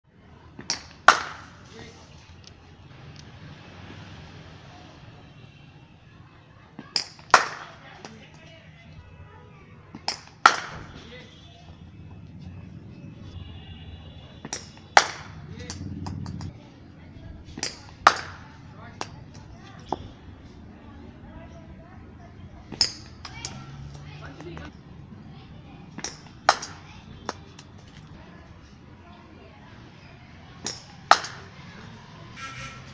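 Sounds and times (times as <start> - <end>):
bat striking ball: 0.6 - 1.5, 6.9 - 7.7, 10.0 - 11.0, 14.4 - 16.5, 17.6 - 18.4, 26.0 - 27.4, 30.7 - 31.5
ball bouncing on concrete: 9.9 - 10.9, 14.4 - 16.6, 22.7 - 23.6, 26.0 - 27.7.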